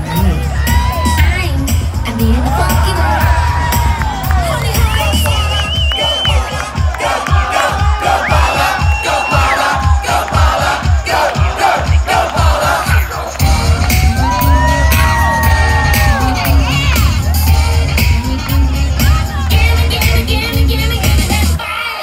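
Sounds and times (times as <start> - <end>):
heavy bass: 0.0 - 21.6
pounding drum beat: 0.0 - 21.6
crowd cheering: 0.0 - 22.0
live pop dance music: 0.0 - 22.0.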